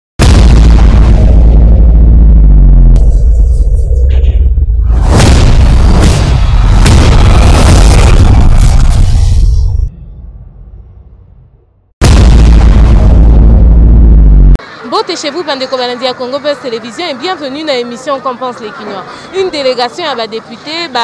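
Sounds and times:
rushing burst with sharp hits: 0:00.2 - 0:09.8
deep booming impacts: 0:00.2 - 0:14.6
sharp crack: 0:04.0 - 0:09.1.

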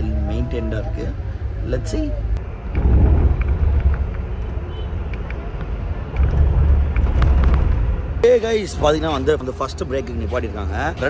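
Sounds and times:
coach engine and road rumble: 0:00.0 - 0:11.0.

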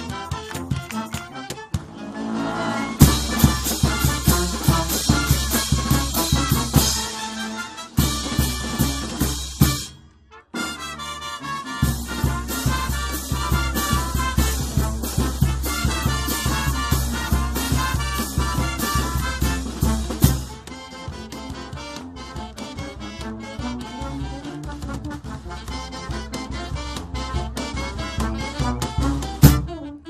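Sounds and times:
brass band playing: 0:00.0 - 0:30.0
bass drum beat: 0:03.0 - 0:07.0, 0:12.0 - 0:21.2, 0:23.9 - 0:29.7.

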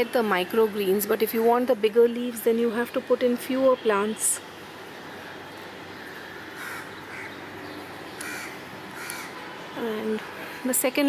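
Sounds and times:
steady background noise: 0:00.0 - 0:11.0
crow cawing: 0:06.1 - 0:07.4, 0:08.2 - 0:09.4.

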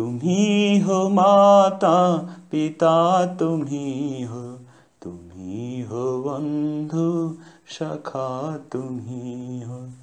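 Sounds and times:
man singing with vibrato: 0:00.0 - 0:10.0.

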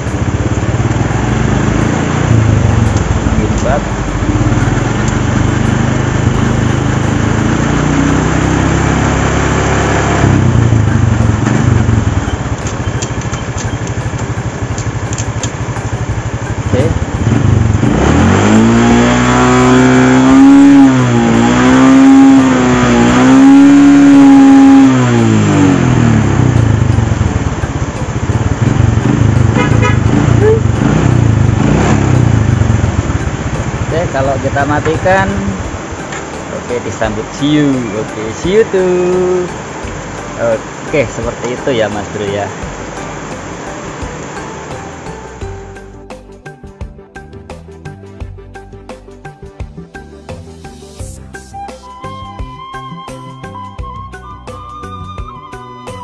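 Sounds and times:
motorcycle engine revving: 0:00.0 - 0:45.8.

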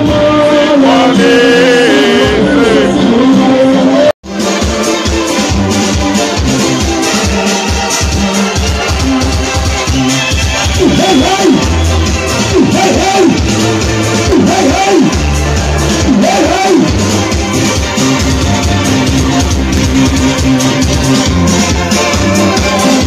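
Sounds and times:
electronic keyboard music: 0:00.0 - 0:23.0.

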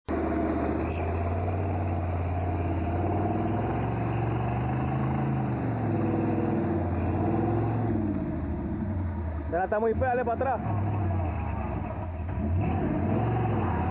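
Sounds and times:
tyres churning through mud: 0:00.1 - 0:08.5, 0:10.1 - 0:13.9
engine revving under load: 0:00.1 - 0:13.9.

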